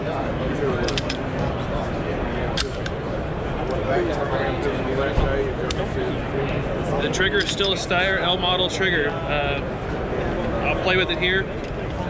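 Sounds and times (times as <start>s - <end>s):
crowd babble: 0.0s - 12.0s
pistol clicks: 2.6s - 3.0s.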